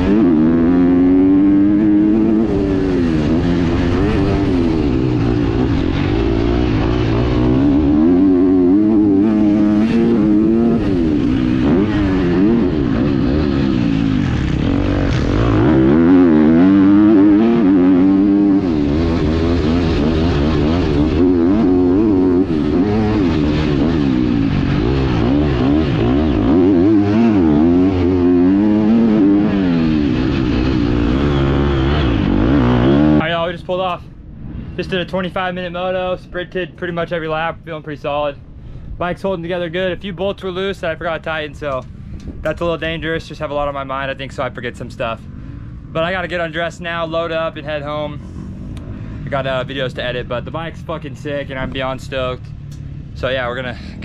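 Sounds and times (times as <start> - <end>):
dirt bike engine revving: 0.0 - 33.6.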